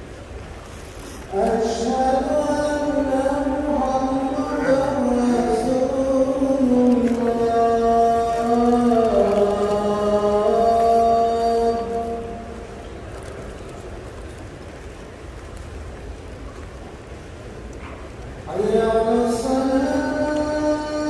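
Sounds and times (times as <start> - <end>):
murmur of large crowd: 0.0 - 21.0
person chanting melodically: 1.3 - 12.9, 18.5 - 21.0.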